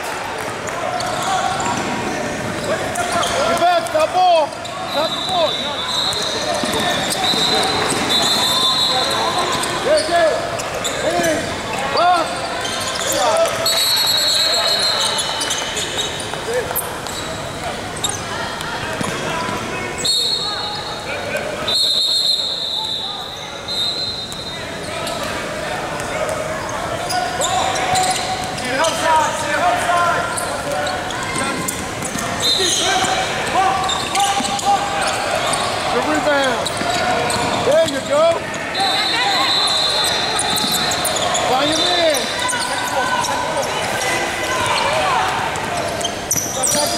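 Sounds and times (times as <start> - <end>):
sneakers squeaking: 0.6 - 46.9
voices calling out: 0.7 - 46.9.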